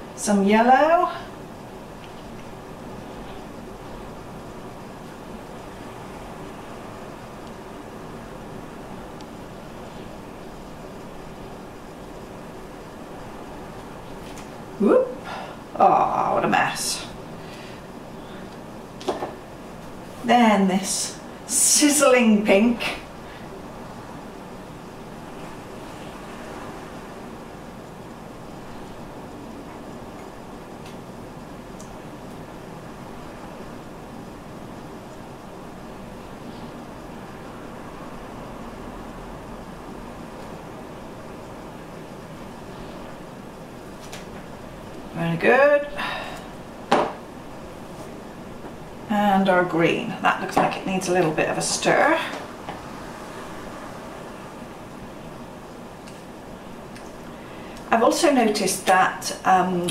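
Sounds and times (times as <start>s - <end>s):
room hiss and low rumble: 0.0s - 59.9s.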